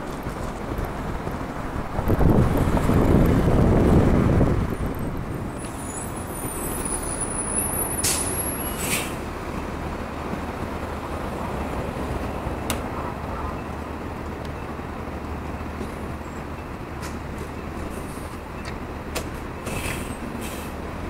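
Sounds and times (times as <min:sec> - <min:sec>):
bus engine running: 0:00.0 - 0:21.0
sharp air releases: 0:08.0 - 0:09.2, 0:19.7 - 0:20.8.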